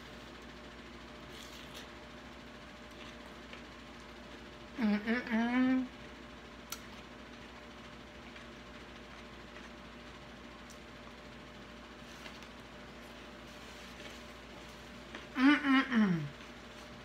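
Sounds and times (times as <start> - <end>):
room tone hum: 0.0 - 17.0.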